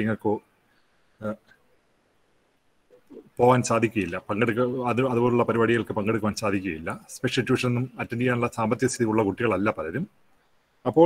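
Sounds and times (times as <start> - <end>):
man speaking through video call: 0.0 - 0.5, 1.2 - 1.5, 3.0 - 10.2.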